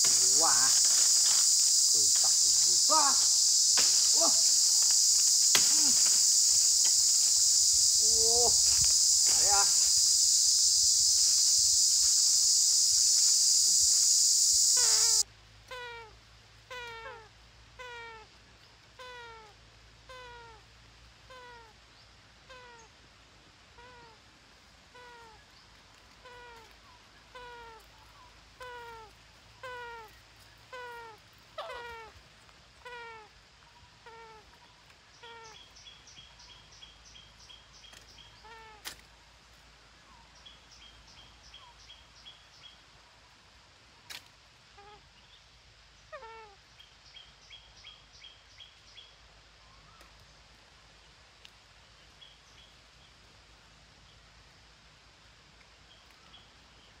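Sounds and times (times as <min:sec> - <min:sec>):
high chattering call: 0:00.0 - 0:15.2
high insect buzz: 0:00.0 - 0:15.9.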